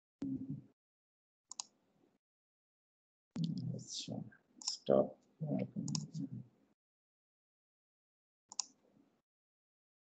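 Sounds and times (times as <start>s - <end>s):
man speaking: 3.4s - 6.4s.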